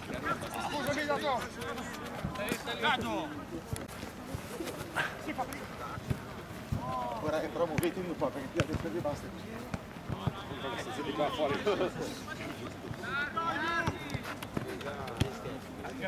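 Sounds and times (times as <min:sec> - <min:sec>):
football being kicked: 0:07.6 - 0:10.4
players shouting: 0:10.0 - 0:16.0.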